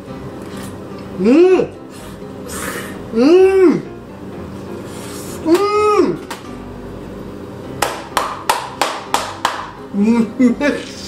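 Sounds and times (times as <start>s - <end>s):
sharp hand claps: 7.8s - 9.8s.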